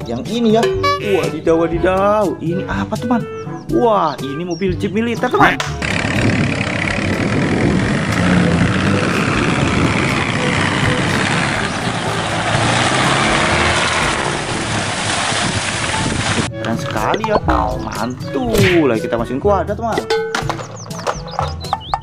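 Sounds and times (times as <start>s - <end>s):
jeep engine running: 5.8s - 16.4s
water rushing and splashing: 10.7s - 17.6s.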